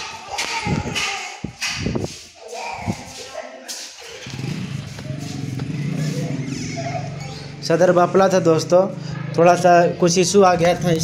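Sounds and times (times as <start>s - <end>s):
engine rumbling: 4.2s - 11.0s.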